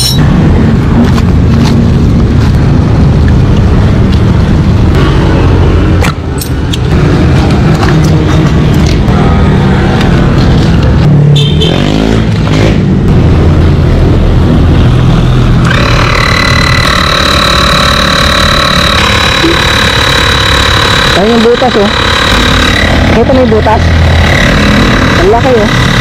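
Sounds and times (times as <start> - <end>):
vehicle engine rumbling: 0.0 - 26.0
tyre inflator whining: 15.6 - 26.0.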